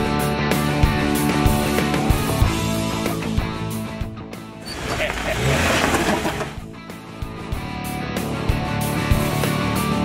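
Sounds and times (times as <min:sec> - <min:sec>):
rock music: 0:00.0 - 0:10.0
tyres on rock: 0:04.6 - 0:06.6
engine revving: 0:04.6 - 0:06.8.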